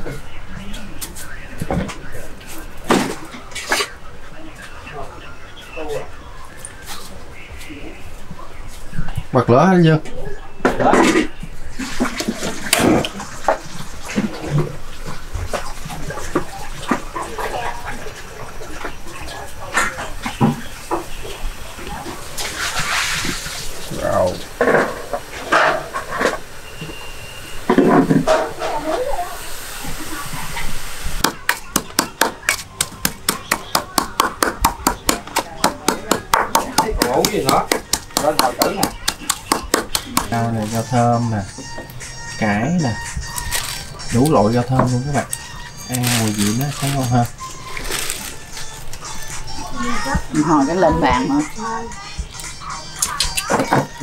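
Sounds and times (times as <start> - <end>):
voices: 0.0 - 54.0
kitchen clatter: 10.6 - 26.5, 27.7 - 29.2
wooden pestle pounding in bowl: 31.2 - 40.6.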